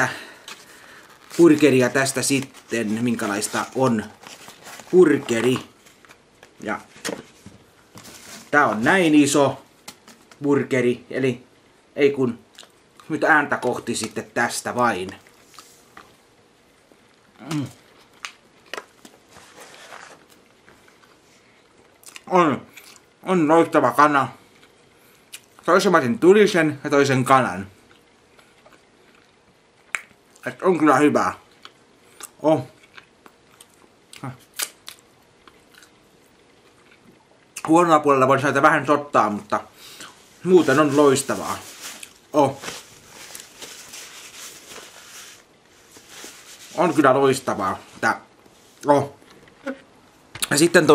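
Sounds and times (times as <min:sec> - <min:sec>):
person chewing: 0:27.8 - 0:30.1, 0:31.6 - 0:37.6.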